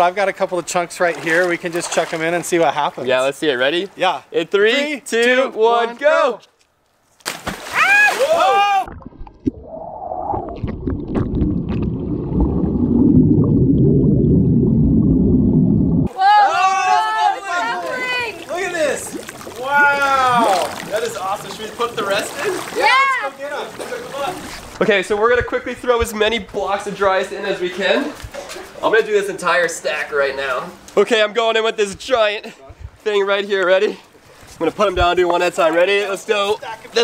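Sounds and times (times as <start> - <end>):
excited shouting: 7.8 - 8.9, 16.1 - 18.9, 22.7 - 23.4
muffled underwater fizzing rumble: 9.0 - 16.1.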